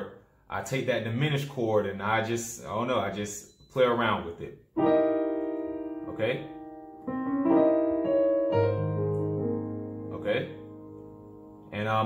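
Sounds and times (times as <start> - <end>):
piano chords and notes: 4.7 - 12.0.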